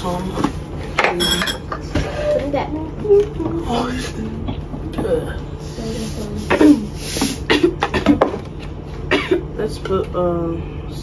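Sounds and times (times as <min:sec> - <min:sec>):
spoon clinking against glassware: 0:01.2 - 0:01.7.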